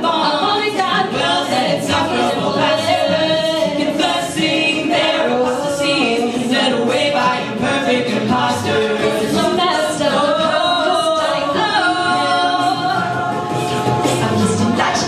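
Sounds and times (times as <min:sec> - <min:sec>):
group singing in harmony: 0:00.0 - 0:15.0.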